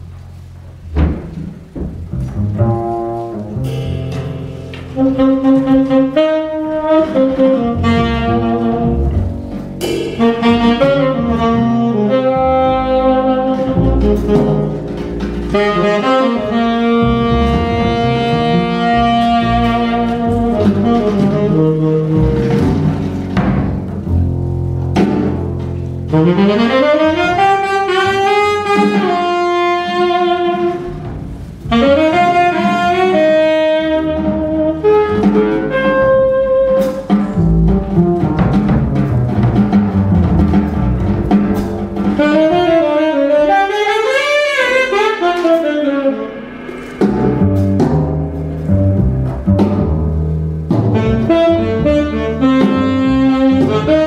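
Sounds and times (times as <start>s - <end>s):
plucked double bass: 0.0s - 54.0s
drum kit with cymbals: 1.1s - 54.0s
saxophone melody: 2.8s - 23.3s, 25.9s - 38.2s, 42.2s - 54.0s.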